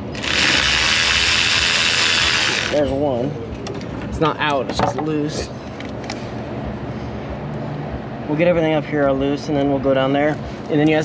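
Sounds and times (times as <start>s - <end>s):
ratchet rattling: 0.0s - 2.9s.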